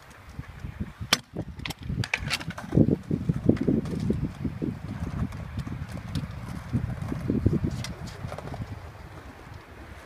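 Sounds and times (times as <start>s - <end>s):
scooter wheels clicking on concrete: 0.0s - 10.0s
wind buffeting microphone: 0.0s - 10.0s.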